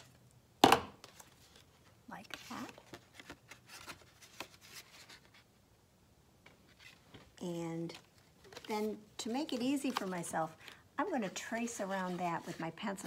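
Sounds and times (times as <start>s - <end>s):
paper rustling: 1.0s - 5.5s, 6.5s - 13.0s.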